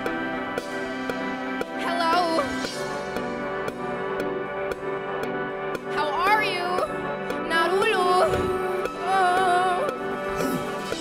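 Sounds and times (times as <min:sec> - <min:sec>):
keyboard chords: 0:00.0 - 0:11.0.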